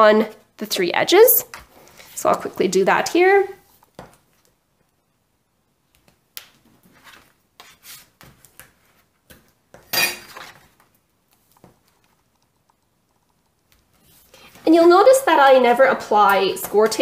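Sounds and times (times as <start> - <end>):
tools and paper tapping and rustling: 6.6 - 12.7, 16.2 - 17.0.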